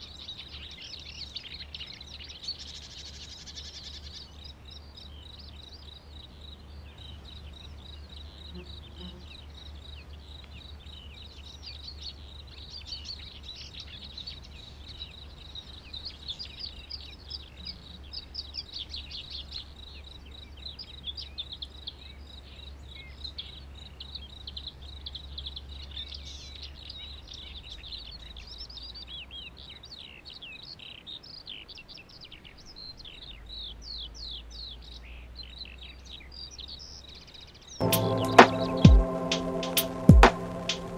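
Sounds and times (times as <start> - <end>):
small birds chirping: 0.0 - 40.9
low steady hum: 37.8 - 40.9.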